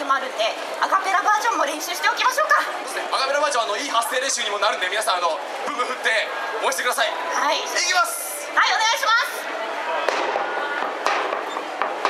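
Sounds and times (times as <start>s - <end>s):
crowd cheering: 4.2s - 12.0s
cheer drum hits: 10.0s - 12.0s.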